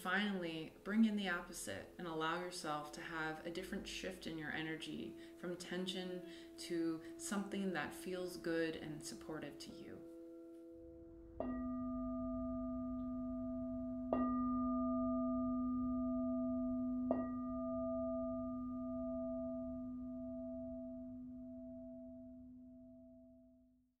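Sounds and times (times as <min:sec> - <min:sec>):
singing bowl ringing: 0:09.5 - 0:23.6.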